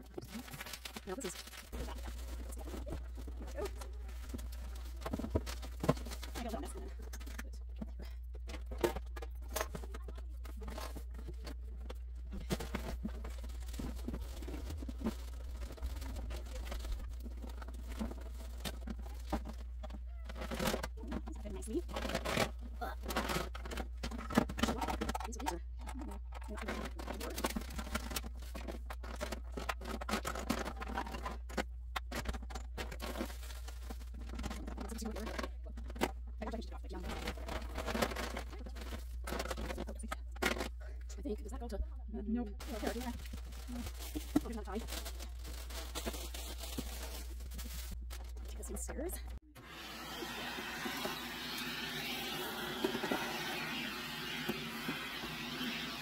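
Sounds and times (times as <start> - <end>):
toys and bags rustling and knocking: 0.0 - 41.4, 42.6 - 49.4.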